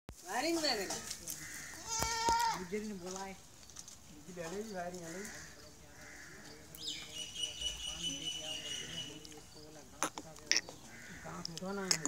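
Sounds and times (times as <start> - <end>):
goats bleating: 1.4 - 2.7.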